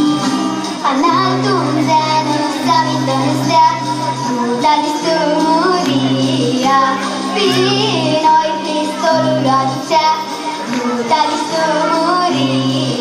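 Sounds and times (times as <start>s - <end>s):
instrumental accompaniment: 0.0s - 13.0s
girl singing into microphone: 0.2s - 13.0s.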